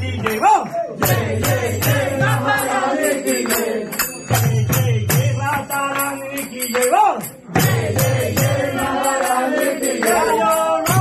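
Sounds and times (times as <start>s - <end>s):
group chanting: 0.0s - 4.5s, 7.4s - 11.0s
small hand cymbals ringing: 1.4s - 11.0s.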